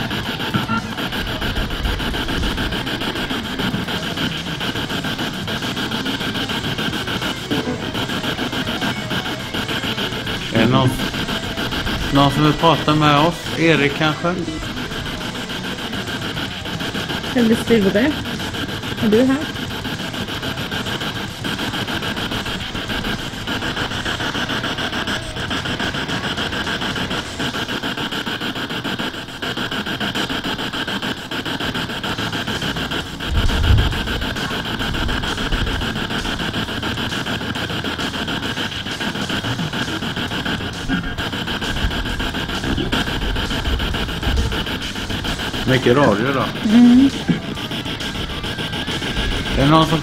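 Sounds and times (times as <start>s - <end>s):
radio static sweeping: 0.0s - 50.0s
snatches of broadcast sound: 0.0s - 50.0s.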